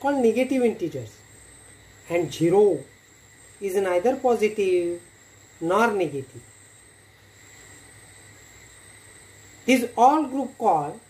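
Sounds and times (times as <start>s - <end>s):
background hiss: 0.0s - 11.0s
high-pitched whine: 0.0s - 11.0s.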